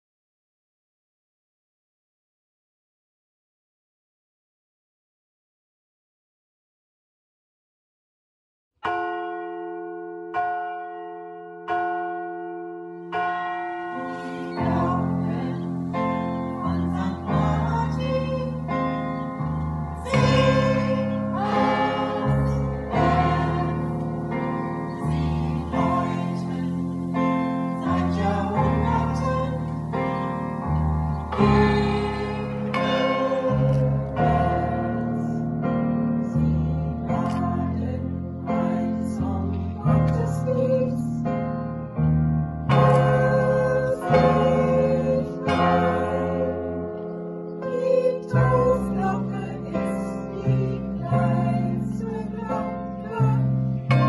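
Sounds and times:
church bells ringing: 8.8 - 39.7, 42.7 - 54.0
keyboard and bass band: 13.1 - 54.0.

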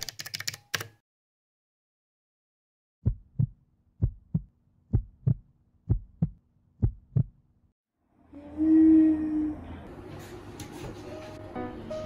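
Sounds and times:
heartbeat thumps: 3.0 - 7.4.

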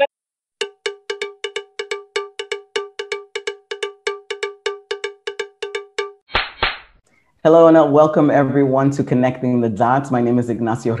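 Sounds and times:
repeated bell-like percussive note: 0.6 - 6.3.

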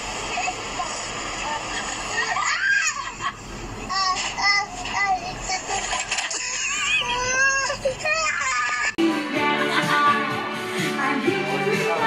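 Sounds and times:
child calling and squealing: 6.4 - 9.0.

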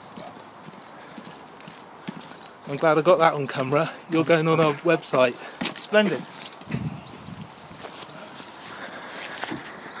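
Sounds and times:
footsteps on tarmac: 0.0 - 10.0.

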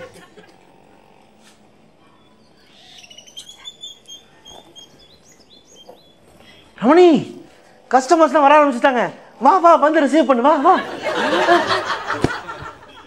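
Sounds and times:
faint bird chirps: 0.7 - 6.9.

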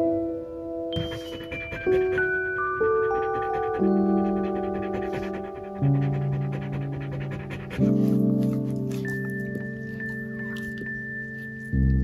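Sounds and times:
soft sustained chords music: 0.0 - 12.0
dog panting: 1.0 - 11.6.

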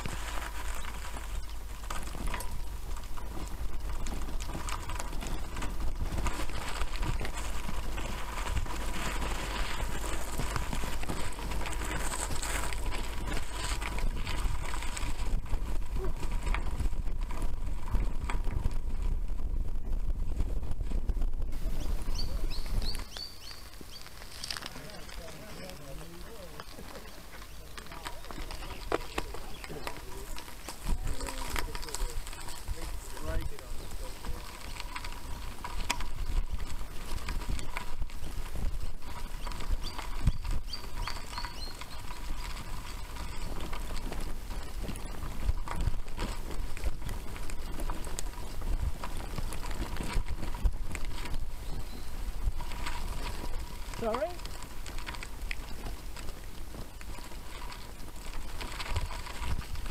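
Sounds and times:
bicycle rattling and knocking: 0.0 - 59.9
wind and tyres rumble: 0.0 - 59.9.

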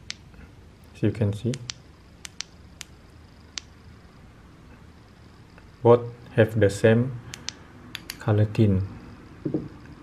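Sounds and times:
flashlight switch clicks: 1.5 - 2.9, 7.3 - 8.2.

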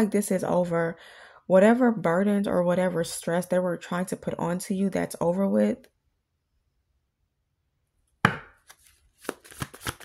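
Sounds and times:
card deck knocking on table: 8.3 - 8.6
cards being shuffled: 8.6 - 10.0.

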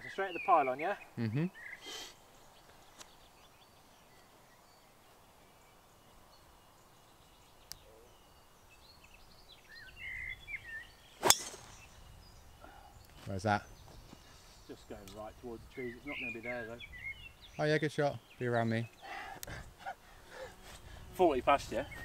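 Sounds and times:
birds chirping faintly: 0.0 - 22.0
golf club striking ball: 11.2 - 12.0.

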